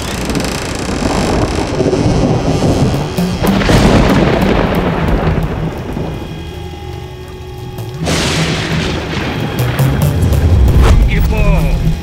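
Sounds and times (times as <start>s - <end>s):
low rumble: 0.2s - 6.6s
held steady tones: 2.2s - 8.1s.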